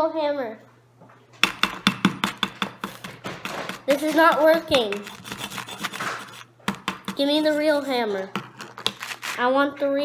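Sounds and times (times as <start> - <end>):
toy hammer tapping on plaster: 1.4 - 5.1, 6.7 - 7.3.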